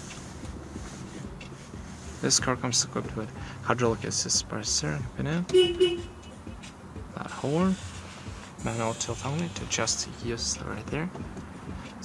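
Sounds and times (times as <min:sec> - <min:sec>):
car engine idling: 0:00.0 - 0:08.6.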